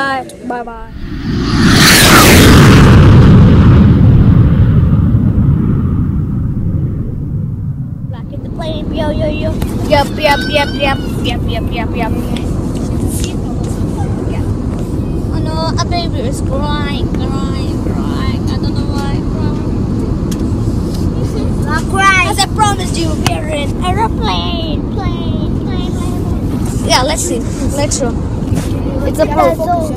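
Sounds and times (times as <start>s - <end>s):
airliner cabin rumble: 0.3s - 29.9s
deep boom rumble: 0.6s - 12.7s
child crying: 9.9s - 11.5s.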